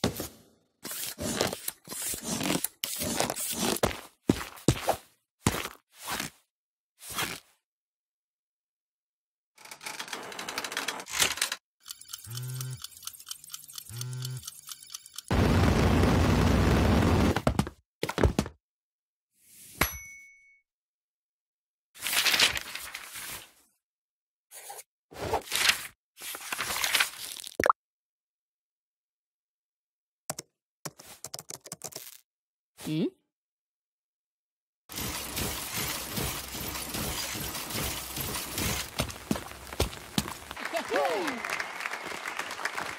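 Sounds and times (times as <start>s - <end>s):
quick clicks: 11.8s - 15.3s
crackling clicking rush: 11.8s - 16.4s
dense crackling clatter: 15.3s - 17.4s.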